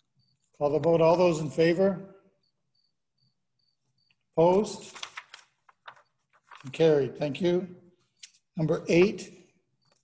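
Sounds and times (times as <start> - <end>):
cricket chirping faintly: 0.0 - 4.6.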